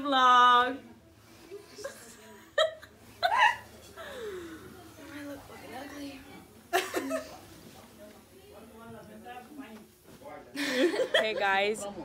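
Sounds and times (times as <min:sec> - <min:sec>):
girls giggling: 0:01.7 - 0:04.4, 0:06.7 - 0:07.4, 0:10.6 - 0:11.6.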